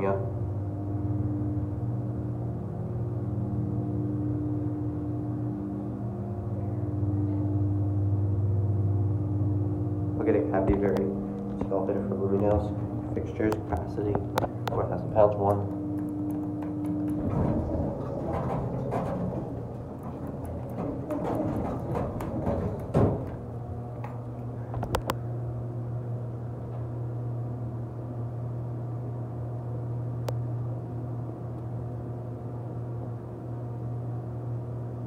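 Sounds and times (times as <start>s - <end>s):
low elevator machine hum: 0.0s - 35.0s
elevator door thud: 10.4s - 24.6s.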